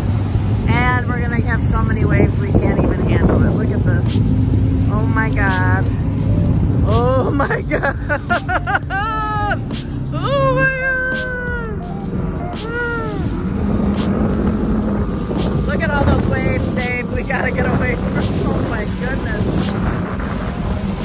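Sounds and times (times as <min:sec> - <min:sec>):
motorboat motor: 0:00.0 - 0:21.0
water rushing: 0:00.0 - 0:21.0
wind buffeting microphone: 0:00.0 - 0:21.0
indistinct voices: 0:00.7 - 0:21.0.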